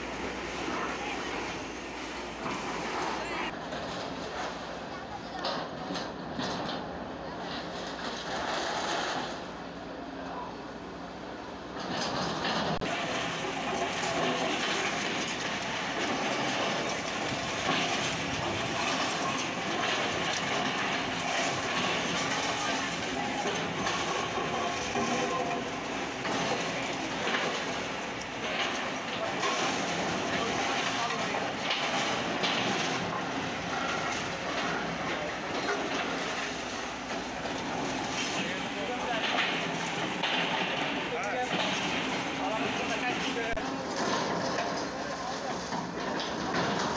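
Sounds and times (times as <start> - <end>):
excavator engine running: 0.0 - 46.9
falling masonry clattering: 11.8 - 46.9.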